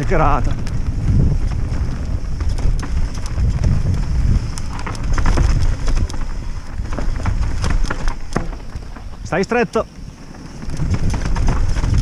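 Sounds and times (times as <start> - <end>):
bike rattling: 0.0 - 12.0
tyres over rocks and roots: 0.0 - 12.0.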